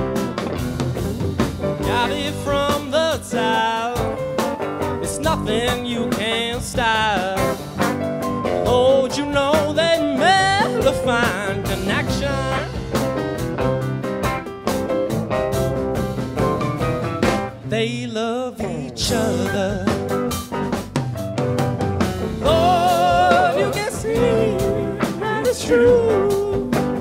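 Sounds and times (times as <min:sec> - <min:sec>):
bending lead guitar line: 0:00.0 - 0:27.0
live rock band playing: 0:00.0 - 0:27.0.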